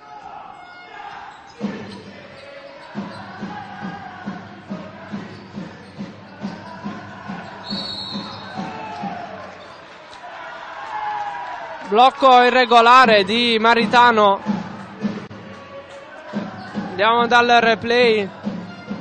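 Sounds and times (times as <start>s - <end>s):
whistle blast: 7.6s - 9.2s.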